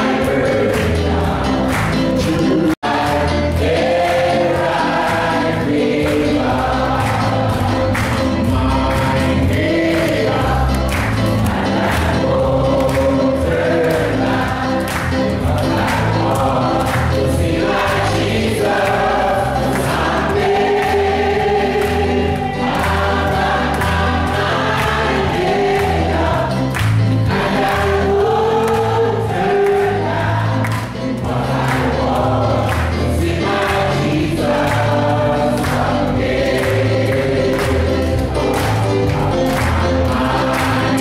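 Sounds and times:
congregation singing: 0:00.0 - 0:41.0.

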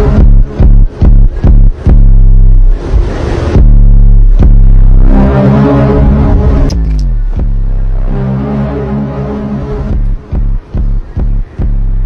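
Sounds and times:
car engine revving: 0:00.0 - 0:12.0
electronic music with heavy bass: 0:00.0 - 0:12.0.

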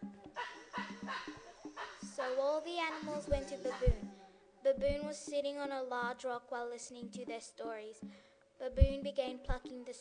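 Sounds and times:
background music: 0:00.0 - 0:10.0
short barking calls: 0:00.3 - 0:03.9.

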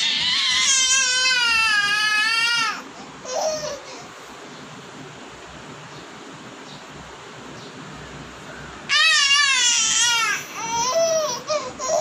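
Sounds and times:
baby crying: 0:00.0 - 0:04.1, 0:08.9 - 0:12.0.

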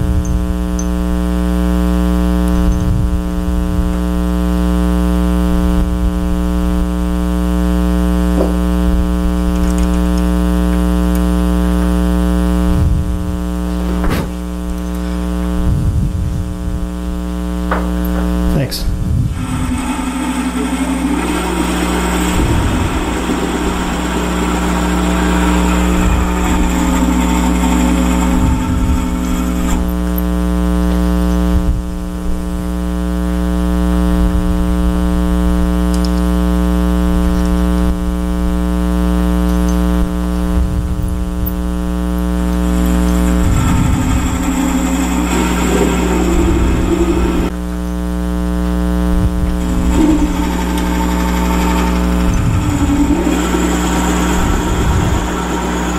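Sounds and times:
lathe motor hum: 0:00.0 - 0:32.2, 0:40.0 - 0:55.9
drill bit cutting into wood: 0:19.3 - 0:30.5, 0:42.4 - 0:47.6, 0:49.4 - 0:55.9.

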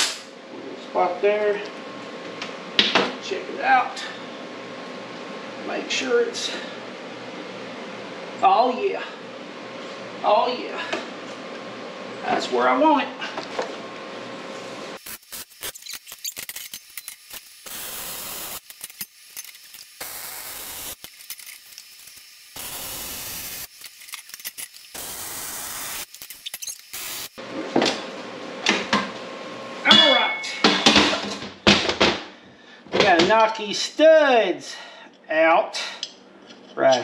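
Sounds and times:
welding arc hiss and crackle: 0:15.0 - 0:27.4.

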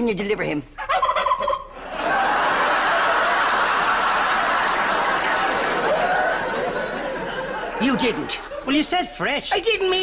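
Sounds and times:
turkey gobbling: 0:00.8 - 0:01.8
studio audience laughter: 0:01.8 - 0:09.1.

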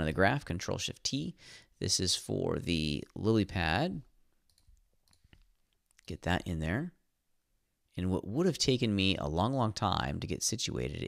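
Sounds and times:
computer mouse clicks: 0:04.4 - 0:06.1.

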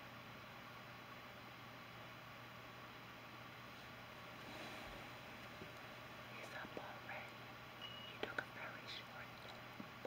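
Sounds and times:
woman whispering softly: 0:06.3 - 0:07.4, 0:08.1 - 0:09.6.

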